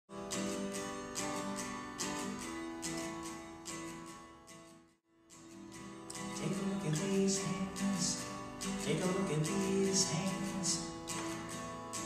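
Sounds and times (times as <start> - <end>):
acoustic guitar strumming: 0.1 - 12.0.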